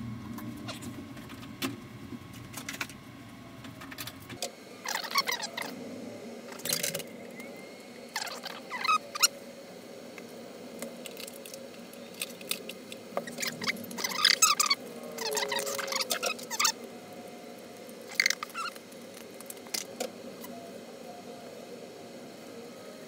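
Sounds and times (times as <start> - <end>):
low drive hum: 0.0 - 23.0.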